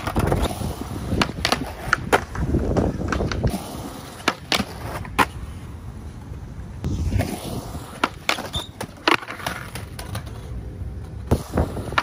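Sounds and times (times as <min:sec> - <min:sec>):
skateboard clicks: 0:00.0 - 0:06.5, 0:07.2 - 0:12.0
skateboard wheels rolling on concrete: 0:00.0 - 0:12.0.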